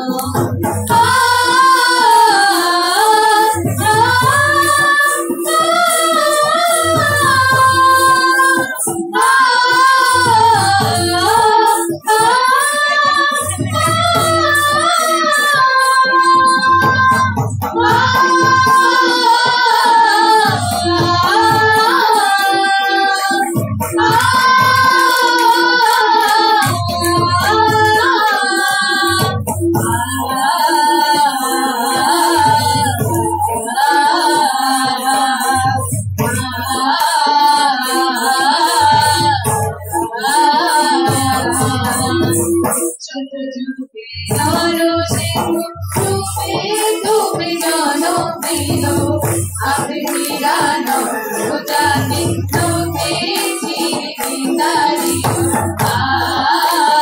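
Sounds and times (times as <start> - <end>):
repeating drum pattern: 0.0 - 43.0, 44.2 - 57.0
crisp high percussion: 0.0 - 43.1, 44.2 - 57.0
high voice singing: 0.0 - 57.0.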